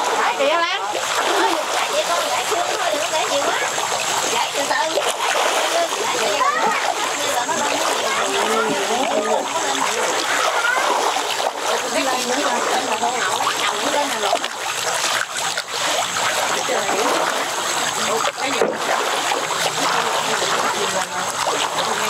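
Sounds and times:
fish splashing at water surface: 0.0 - 22.0.

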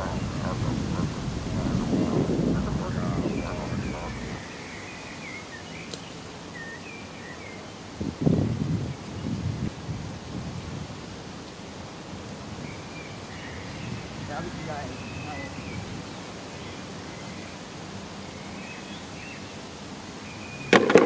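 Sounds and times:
short low bursts: 0.0 - 4.6
small birds chirping: 0.0 - 9.6, 12.4 - 21.0.

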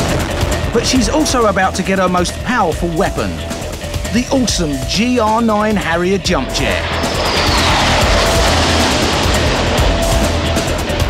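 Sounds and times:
jet rushing past: 6.5 - 11.0
loud music with heavy beat: 6.6 - 11.0.

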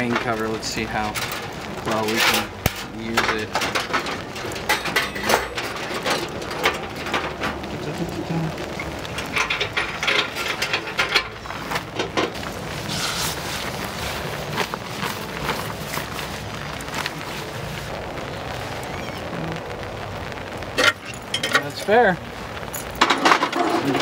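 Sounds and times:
camp stove gear clicking and rattling: 0.0 - 13.0, 20.8 - 22.0, 22.7 - 24.0
light rain hissing: 0.0 - 24.0.

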